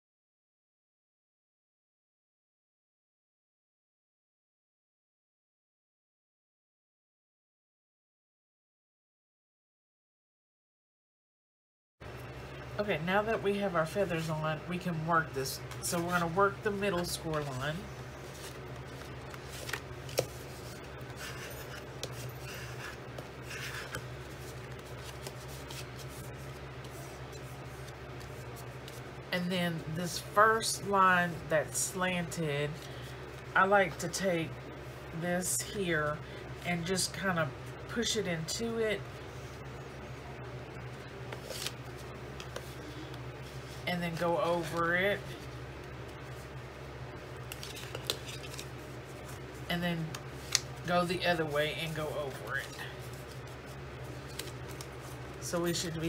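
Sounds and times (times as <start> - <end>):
cardstock folding crackles: 15.6 - 29.1, 41.3 - 44.8, 47.3 - 55.9
paper rubbing and rustling: 15.6 - 29.1, 41.3 - 43.8, 47.4 - 55.9.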